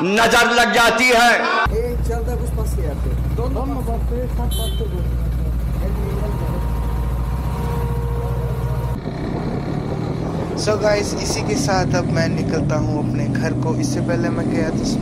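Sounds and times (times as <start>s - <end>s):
motorcycle engine idling: 1.7s - 9.0s
motorcycle riding along road: 1.7s - 15.0s.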